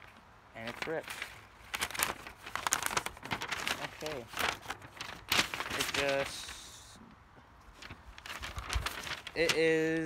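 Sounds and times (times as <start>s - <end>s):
paper rustling and crinkling: 0.0s - 6.9s, 7.6s - 10.0s.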